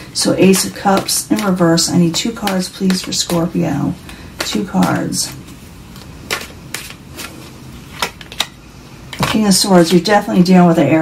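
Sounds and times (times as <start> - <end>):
cards slapping while shuffled: 0.5 - 5.4, 6.0 - 8.6.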